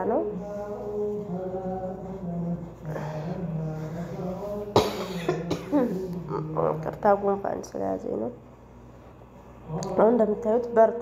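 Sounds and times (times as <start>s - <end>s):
person coughing: 4.7s - 6.0s.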